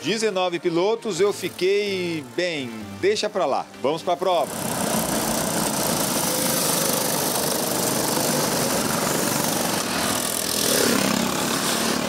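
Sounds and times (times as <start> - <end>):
go-kart engines buzzing: 4.4 - 12.0.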